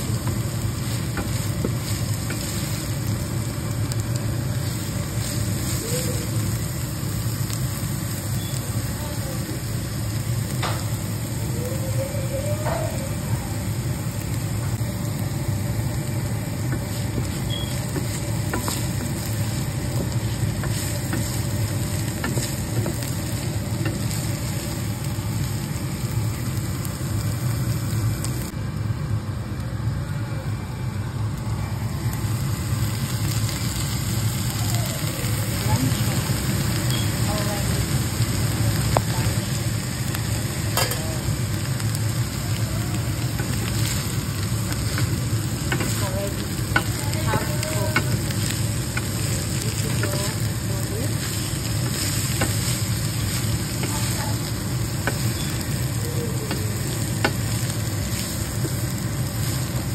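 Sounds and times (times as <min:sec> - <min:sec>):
meat sizzling in frying pan: 0:00.0 - 0:29.4, 0:30.8 - 0:59.9.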